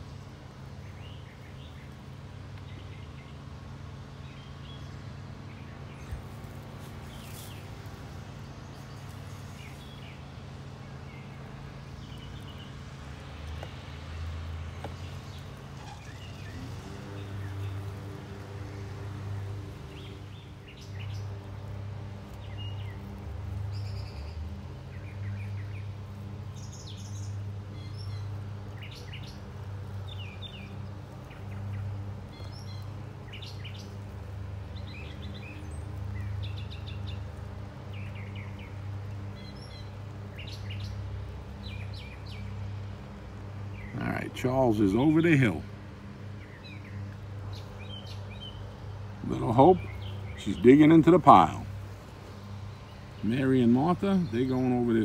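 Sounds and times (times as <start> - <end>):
birds chirping: 0.0 - 55.0.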